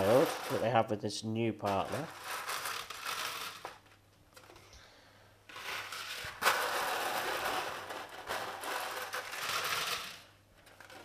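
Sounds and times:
candies clattering on plastic: 0.0 - 0.8, 1.6 - 4.5, 5.5 - 11.0.

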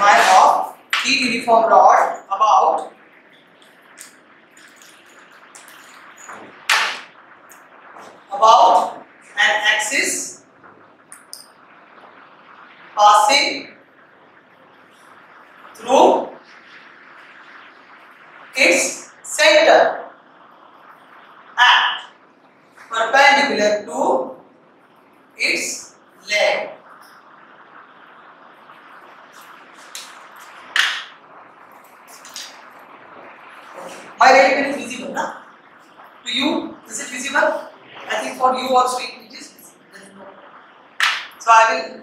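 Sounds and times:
faint room noise: 0.0 - 42.0.

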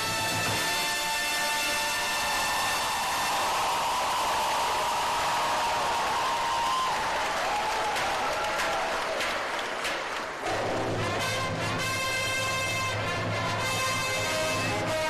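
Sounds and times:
brass band chord: 0.0 - 3.6, 10.4 - 15.0
cheers: 2.0 - 11.4
audience applauding: 2.0 - 14.7.

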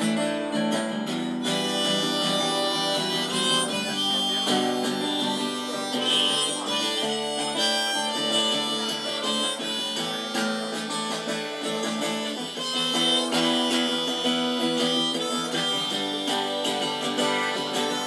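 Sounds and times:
harmonica solo: 0.0 - 18.0
strummed acoustic guitar: 0.0 - 18.0.

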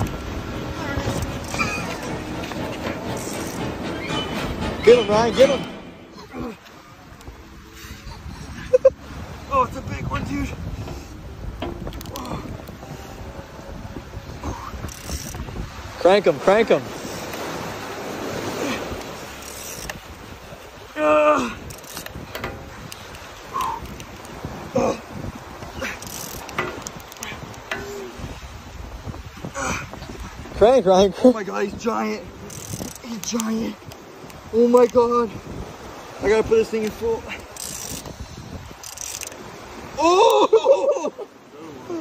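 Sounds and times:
sea surf: 0.0 - 42.0
wind: 0.0 - 42.0
fishing reel cranking: 3.1 - 3.6, 14.4 - 15.5, 19.4 - 20.0, 21.7 - 24.4, 25.8 - 27.9, 32.5 - 33.7, 36.9 - 38.2, 38.8 - 39.4.

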